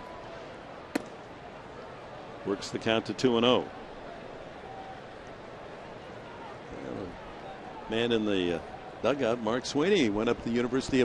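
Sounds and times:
faint crowd murmur: 0.0 - 11.0
baseball smacking into mitt: 0.9 - 1.2.

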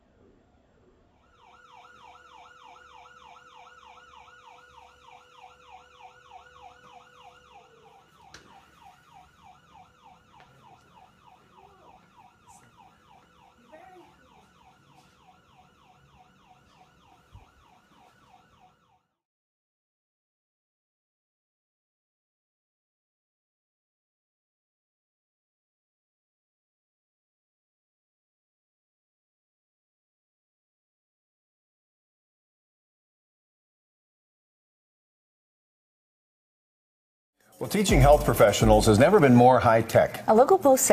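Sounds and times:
faint steady tone: 0.0 - 19.0
ambulance siren yelping: 1.2 - 19.1, 37.6 - 40.9.

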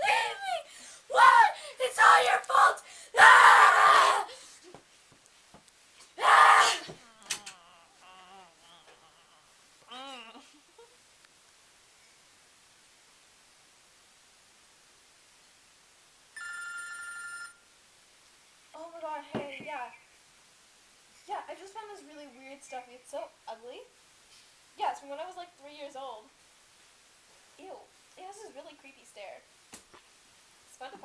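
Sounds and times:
person screaming: 6.2 - 9.5
phone ringing: 16.4 - 17.6.

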